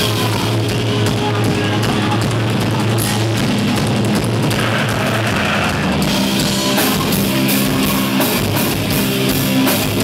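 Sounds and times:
distorted electric guitar and bass: 0.0 - 10.0
drums: 0.0 - 10.0.

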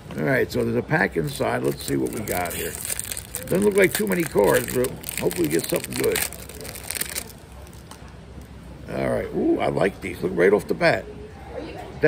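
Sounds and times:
wrapper crinkling: 0.5 - 8.0.

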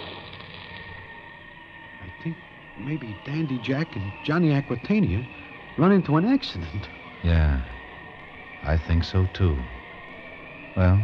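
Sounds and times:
low wind howl: 0.0 - 11.0.

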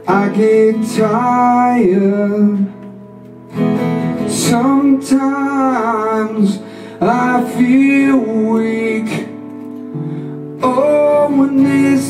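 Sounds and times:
man singing: 0.0 - 3.0, 4.2 - 9.6, 10.5 - 12.0
acoustic guitars strumming: 0.0 - 12.0.

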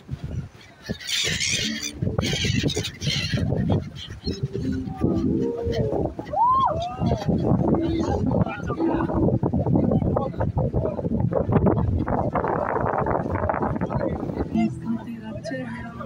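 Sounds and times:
gulls calling: 0.5 - 10.5
people talking indistinctly: 4.3 - 11.4, 12.4 - 16.0.

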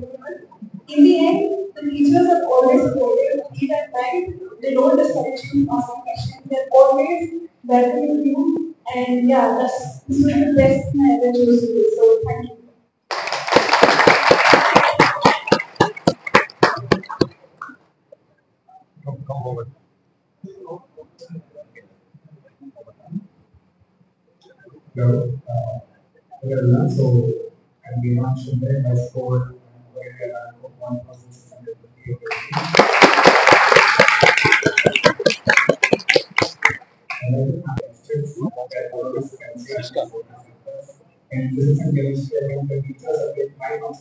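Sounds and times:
close hand claps: 13.1 - 17.7, 32.2 - 37.2
group applause: 13.1 - 17.7, 32.2 - 37.2
low voices: 13.1 - 17.7, 18.8 - 19.7, 24.4 - 44.0.

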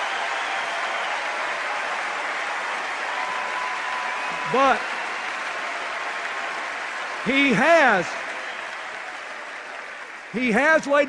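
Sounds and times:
large crowd applauding: 0.0 - 11.0.

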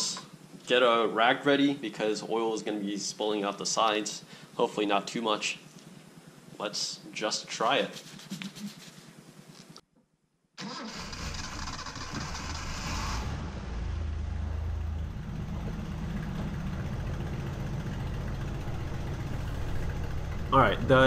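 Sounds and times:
car engine starting and idling roughly: 10.6 - 13.8, 14.6 - 21.0.

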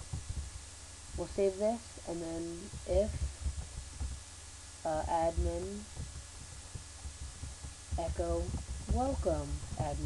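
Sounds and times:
microphone hum: 0.0 - 10.0.

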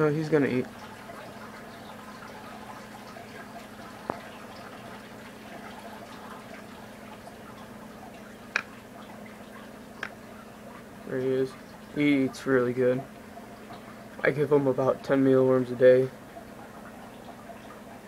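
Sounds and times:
low background hum: 0.0 - 18.0.

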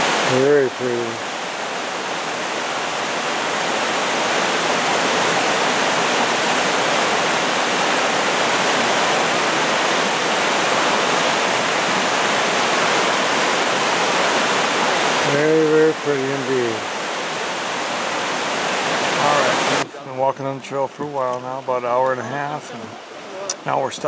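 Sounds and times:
waterfall rushing: 0.0 - 24.0.

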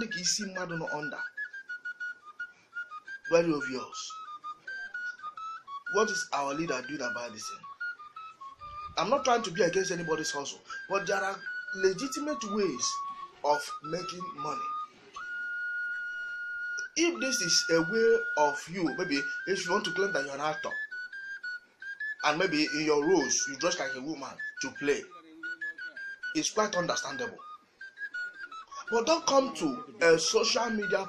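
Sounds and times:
man speaking: 0.0 - 1.2, 3.3 - 4.1, 5.9 - 7.6, 9.0 - 14.7, 17.0 - 20.7, 22.2 - 25.1, 26.4 - 27.4, 28.8 - 31.0
thin whistle-like melody: 0.0 - 31.0.

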